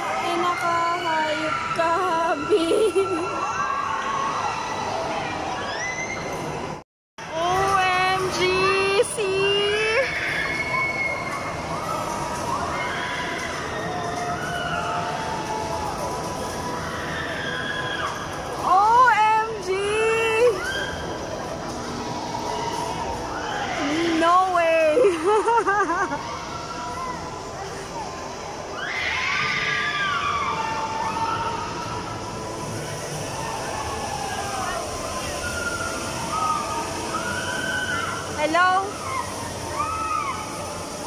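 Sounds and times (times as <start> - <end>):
crowd and ride din: 0.0 - 41.0
riders screaming: 28.7 - 41.0.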